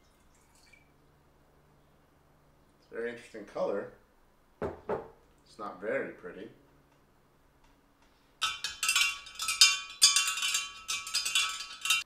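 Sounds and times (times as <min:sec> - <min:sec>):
metal spoon clinking in glass jar: 0:08.4 - 0:12.0.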